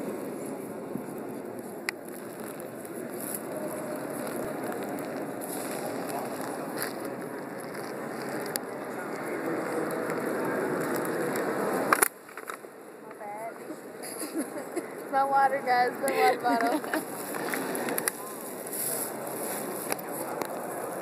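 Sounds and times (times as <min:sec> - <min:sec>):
murmur of crowd talking: 0:00.0 - 0:21.0.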